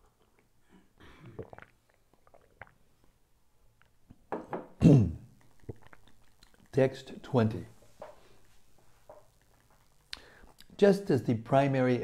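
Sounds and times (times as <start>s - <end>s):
man swallowing while drinking: 0.2s - 3.1s, 4.7s - 6.7s.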